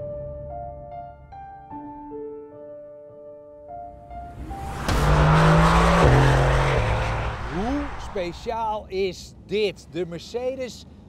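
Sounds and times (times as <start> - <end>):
loud car engine running: 4.4 - 8.6.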